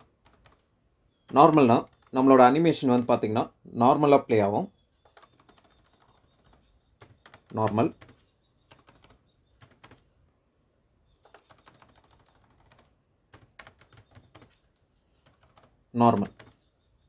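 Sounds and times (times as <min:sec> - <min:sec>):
computer keyboard typing: 0:00.0 - 0:02.3, 0:05.0 - 0:10.0, 0:11.2 - 0:16.7.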